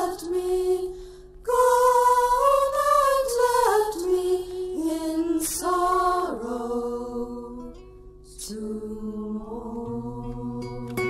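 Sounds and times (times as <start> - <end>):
group singing held note: 0.0 - 7.8.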